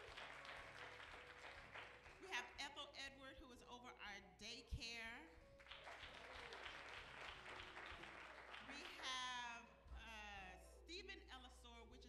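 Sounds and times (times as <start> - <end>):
congregation applauding: 0.0 - 2.6, 5.5 - 9.3.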